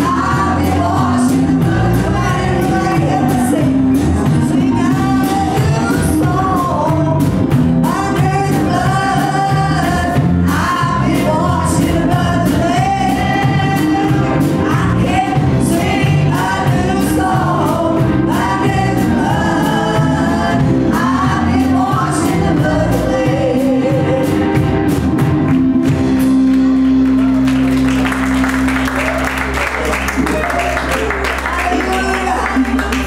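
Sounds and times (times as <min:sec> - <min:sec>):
choir singing gospel: 0:00.0 - 0:25.8
bass: 0:00.0 - 0:33.0
live band: 0:00.0 - 0:33.0
steady drum beat: 0:00.0 - 0:33.0.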